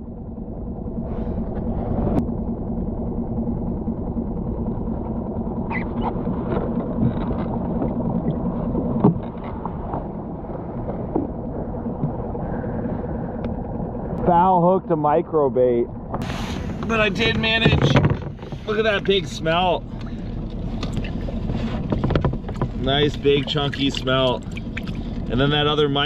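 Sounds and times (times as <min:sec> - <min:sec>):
outboard motor idling: 0:00.0 - 0:26.0
knocks on boat: 0:16.8 - 0:18.7, 0:21.8 - 0:23.0.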